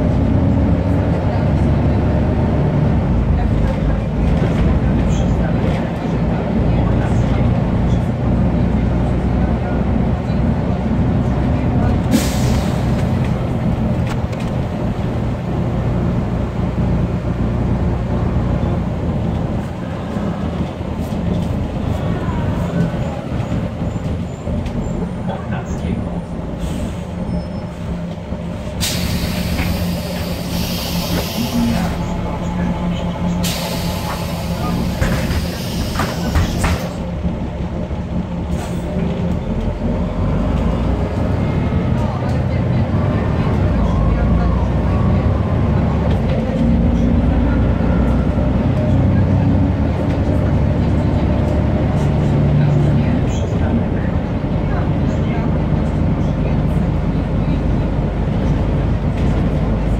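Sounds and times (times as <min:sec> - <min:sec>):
bus diesel engine running: 0:00.0 - 0:59.9
pneumatic air hisses: 0:28.8 - 0:32.0, 0:33.4 - 0:37.0.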